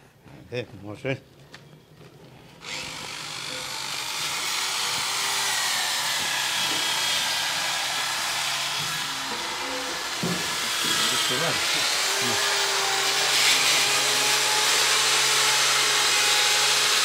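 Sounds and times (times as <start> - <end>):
power tool grinding metal: 2.6 - 17.0.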